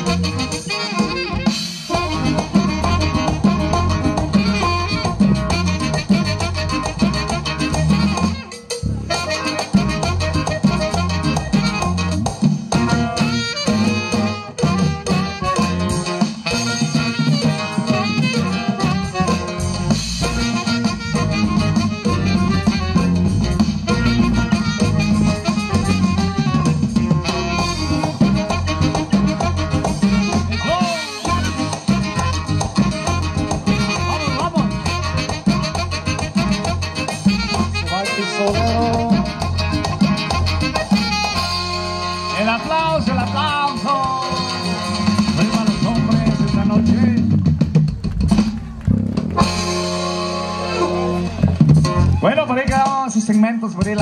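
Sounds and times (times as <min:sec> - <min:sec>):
drums: 0:00.0 - 0:54.0
live band playing dance music: 0:00.0 - 0:54.0.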